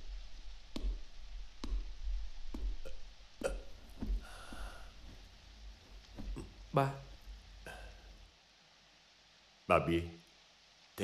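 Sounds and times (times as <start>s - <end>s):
footsteps on hard floor: 3.8s - 6.5s.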